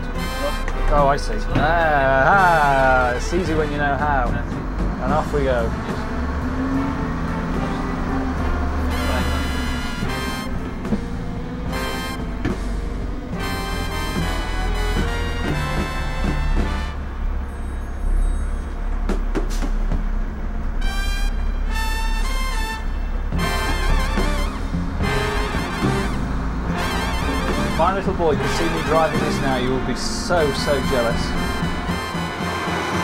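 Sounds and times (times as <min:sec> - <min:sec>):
music with brass stabs: 0:00.0 - 0:17.4, 0:20.6 - 0:33.0
lorry diesel engine drone: 0:00.0 - 0:33.0.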